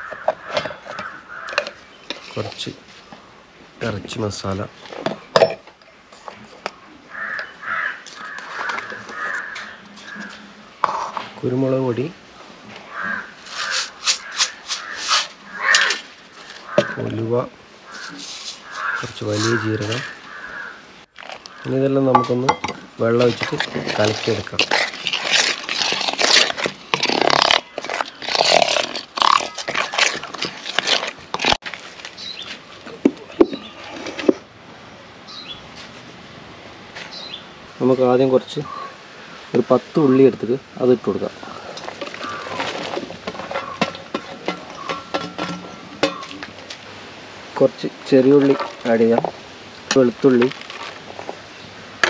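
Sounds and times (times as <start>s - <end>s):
crow cawing: 0.0s - 1.8s, 7.1s - 10.4s, 12.8s - 17.2s, 17.8s - 21.8s, 41.4s - 44.0s
metal spoon scraping a bowl: 13.4s - 16.0s.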